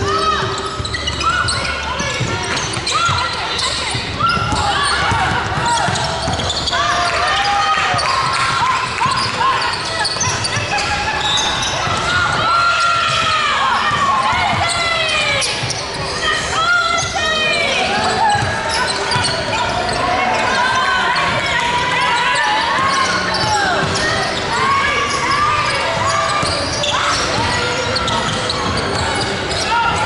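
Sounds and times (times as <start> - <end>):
players calling out: 0.0 - 30.0
sneakers squealing on floor: 0.0 - 30.0
basketball bouncing: 3.9 - 6.7.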